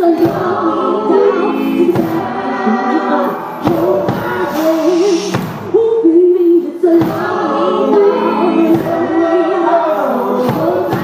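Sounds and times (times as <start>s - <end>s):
choir-like harmony vocals: 0.0s - 11.0s
woman singing lead vocals: 0.0s - 11.0s.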